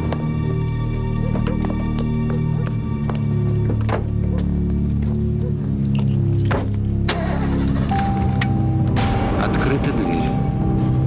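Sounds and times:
music: 0:00.0 - 0:11.0.

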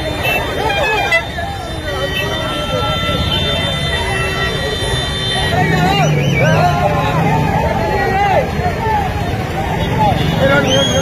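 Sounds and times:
crowd shouting and talking: 0:00.0 - 0:11.0.

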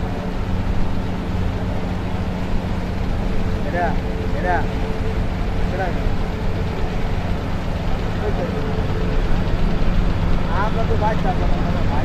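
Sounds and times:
boat engine droning: 0:00.0 - 0:12.0.

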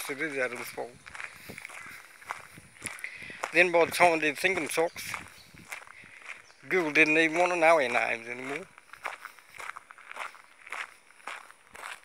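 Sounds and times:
footsteps walking: 0:00.0 - 0:12.0.

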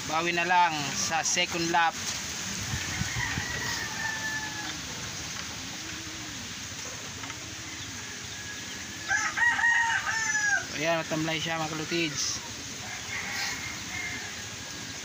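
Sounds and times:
rooster crowing: 0:02.6 - 0:06.4, 0:07.3 - 0:15.0
pigeon cooing: 0:02.7 - 0:10.7.

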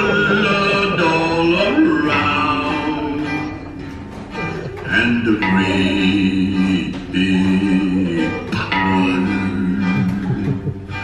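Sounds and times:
country music with plucked guitar: 0:00.0 - 0:11.0.

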